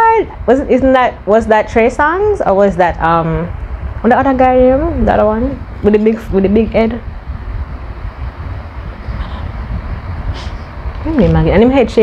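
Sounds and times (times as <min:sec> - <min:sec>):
low microphone rumble: 0:00.0 - 0:12.0.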